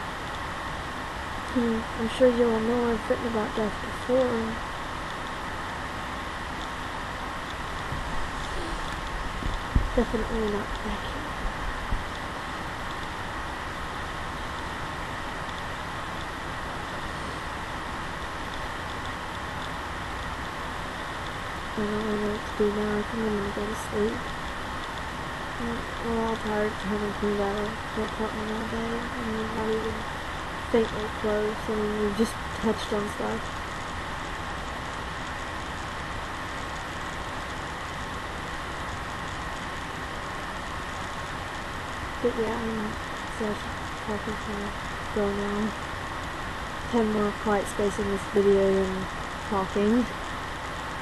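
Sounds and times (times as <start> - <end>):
faint steady whine: 0.0 - 51.0
room noise hiss: 0.0 - 51.0.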